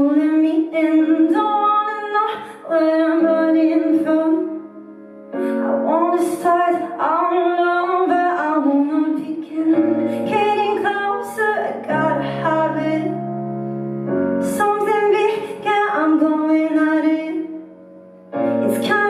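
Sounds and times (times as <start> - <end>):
woman singing a ballad: 0.0 - 4.7, 5.4 - 13.4, 14.4 - 17.7, 18.4 - 19.0
keyboard piano chords: 0.0 - 19.0.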